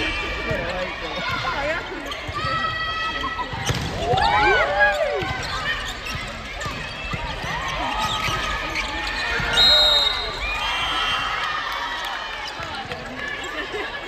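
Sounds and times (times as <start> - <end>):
shoes squeaking on gym floor: 4.9 - 10.4
high whistle blast: 9.5 - 10.5.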